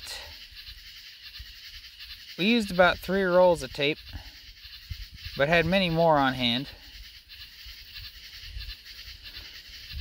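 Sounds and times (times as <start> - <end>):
animal sounds: 0.0 - 10.0
outdoor hush: 0.0 - 10.0.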